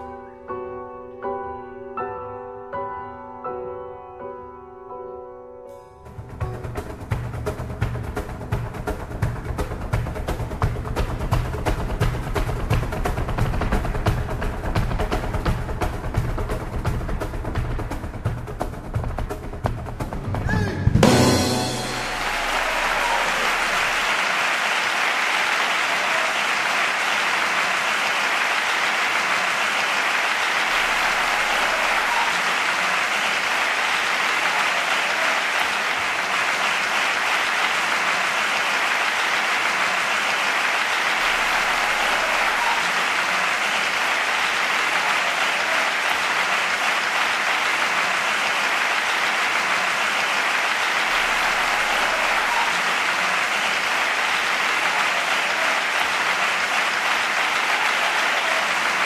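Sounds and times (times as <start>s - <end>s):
audience applauding: 6.1s - 59.0s.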